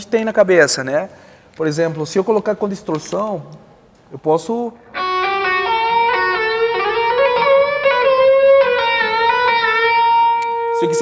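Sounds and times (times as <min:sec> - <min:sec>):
distorted electric guitar phrase: 0:04.8 - 0:11.0.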